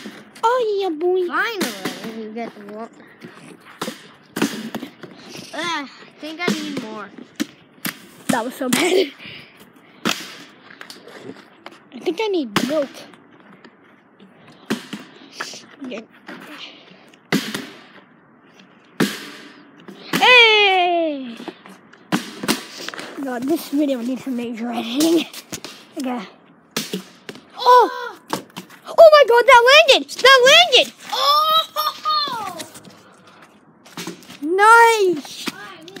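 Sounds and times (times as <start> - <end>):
child crying: 27.6 - 28.2, 31.0 - 32.8.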